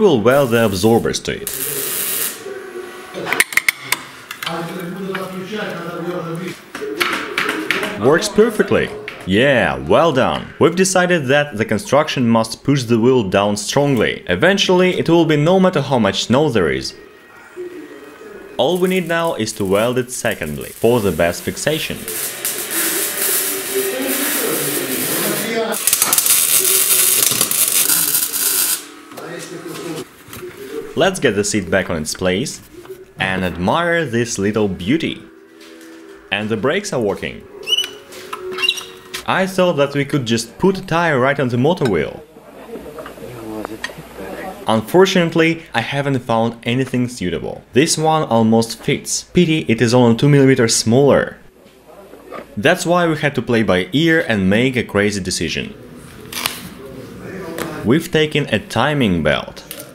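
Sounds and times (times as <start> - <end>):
welder arc hissing and crackling: 0.3 - 2.5, 18.6 - 29.0.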